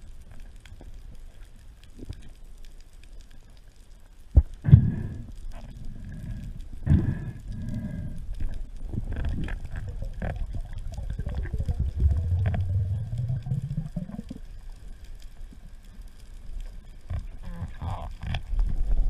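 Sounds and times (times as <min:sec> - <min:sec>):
muffled underwater sound: 0:04.3 - 0:19.0.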